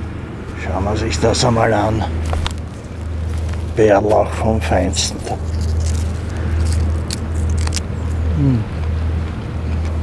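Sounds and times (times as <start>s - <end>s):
low steady rumble: 0.0s - 10.0s
leaf being chewed: 2.2s - 3.8s, 4.9s - 10.0s.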